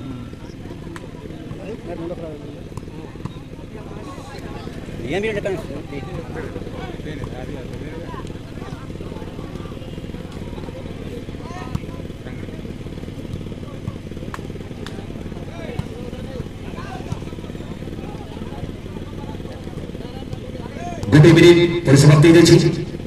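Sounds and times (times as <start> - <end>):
faint crowd chatter: 0.0 - 23.0.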